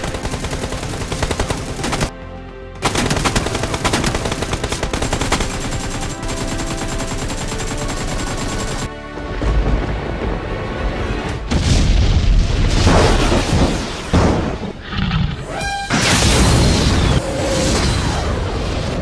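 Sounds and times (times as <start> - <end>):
background music: 0.0 - 16.2.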